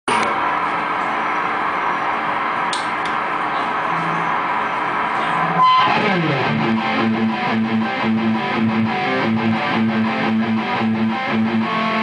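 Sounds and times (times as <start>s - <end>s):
high guitar note falling in pitch: 5.4s - 12.0s
electric guitar chord sustaining: 5.5s - 12.0s.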